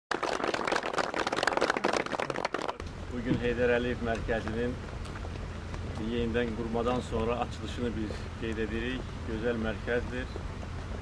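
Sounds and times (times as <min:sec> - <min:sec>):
crowd applauding: 0:00.1 - 0:02.8.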